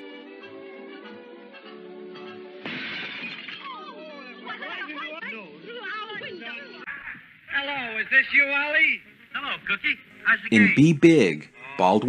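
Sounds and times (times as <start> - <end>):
window glass shattering: 2.6 - 3.8
voices from film soundtrack: 3.6 - 12.0.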